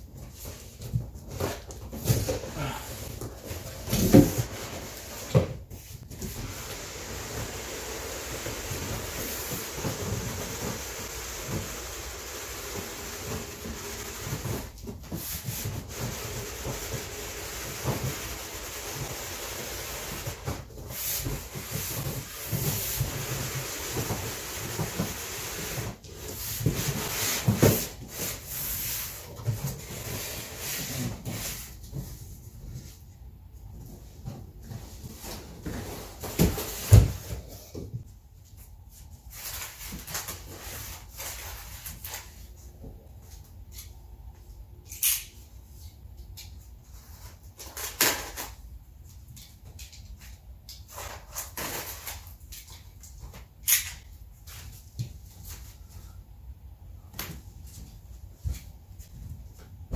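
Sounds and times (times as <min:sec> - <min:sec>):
cardboard rubbing and scraping: 0:00.4 - 0:32.2.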